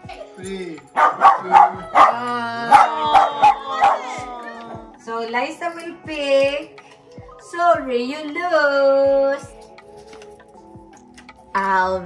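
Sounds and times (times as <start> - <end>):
small dog barking: 1.0 - 4.1.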